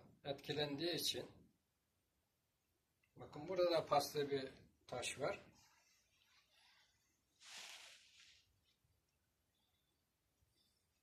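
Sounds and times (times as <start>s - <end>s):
faint hiss: 5.0s - 11.0s.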